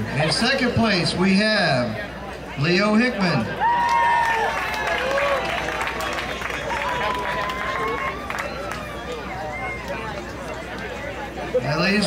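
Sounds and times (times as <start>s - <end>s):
audience clapping: 3.8s - 10.2s.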